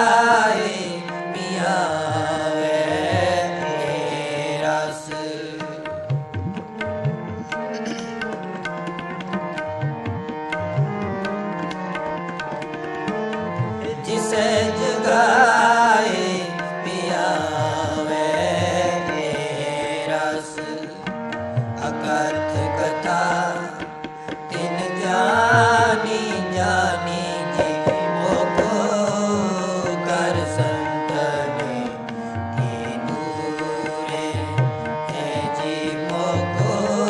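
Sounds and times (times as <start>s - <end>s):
man singing: 0.0s - 8.4s, 13.5s - 37.0s
harmonium drone: 0.0s - 37.0s
person chanting: 0.0s - 37.0s
low tabla strokes: 5.6s - 19.9s, 20.6s - 37.0s.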